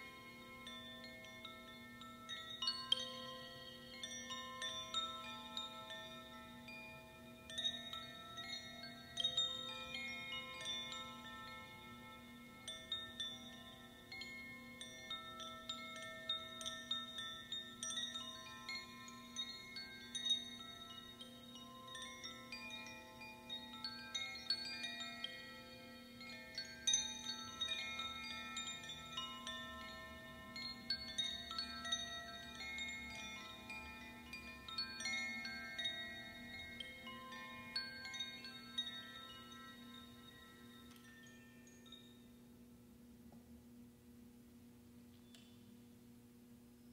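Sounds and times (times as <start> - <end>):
bamboo chimes tinkling: 0.0 - 43.0, 44.7 - 46.9.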